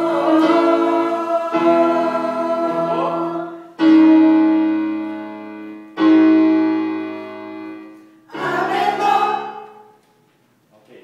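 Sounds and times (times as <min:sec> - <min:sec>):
choir singing: 0:00.0 - 0:03.9, 0:08.3 - 0:10.0.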